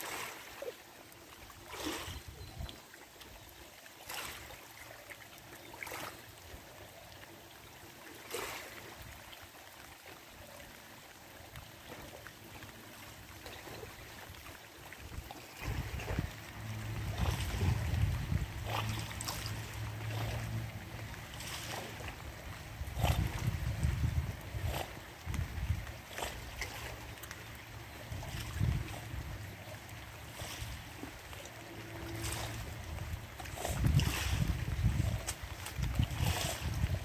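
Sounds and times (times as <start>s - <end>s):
small waves lapping: 0.0s - 37.0s
wind buffeting microphone: 15.0s - 20.6s, 22.2s - 26.7s, 28.1s - 29.6s, 32.3s - 37.0s.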